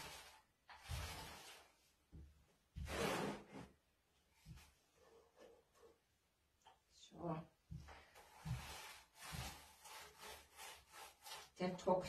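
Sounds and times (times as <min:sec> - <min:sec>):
paint roller swishing on wood: 0:00.0 - 0:03.7, 0:07.7 - 0:12.0.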